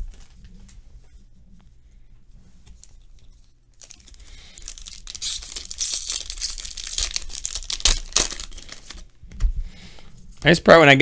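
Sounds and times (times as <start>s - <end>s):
foil wrapper crinkling: 3.7s - 9.1s
foil wrapper ripping: 3.8s - 9.1s.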